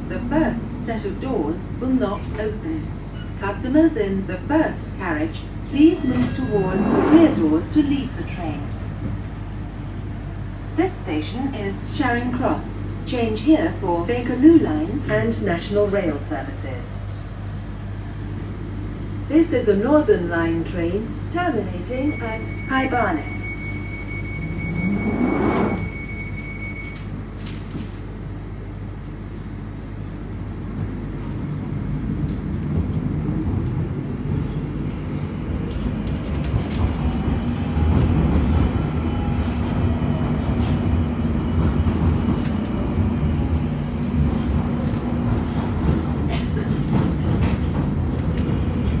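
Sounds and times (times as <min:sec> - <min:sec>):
train wheels rumbling and clattering: 0:00.0 - 0:49.0
underground train motor whine: 0:00.0 - 0:49.0.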